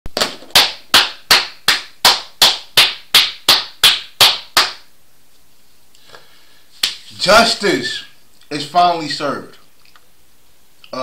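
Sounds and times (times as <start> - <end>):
person clapping slowly: 0.6 - 4.9.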